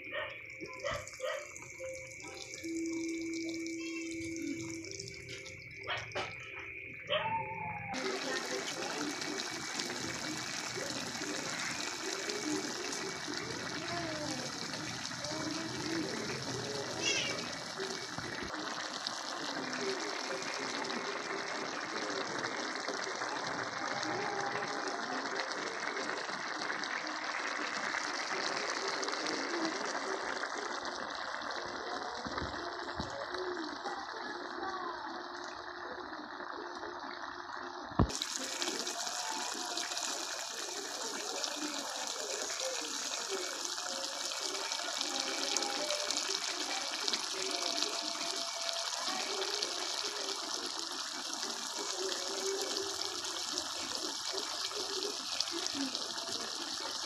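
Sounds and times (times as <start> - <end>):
stew bubbling in a pan: 0.0 - 57.0.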